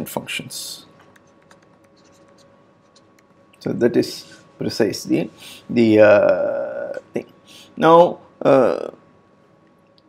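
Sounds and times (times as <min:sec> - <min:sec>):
thin steady hum: 0:00.0 - 0:10.0
stylus tapping and scratching tablet: 0:01.0 - 0:03.4.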